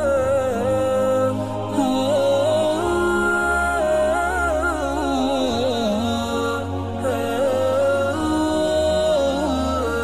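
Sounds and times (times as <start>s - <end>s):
voice chanting a slow melody: 0.0s - 10.0s.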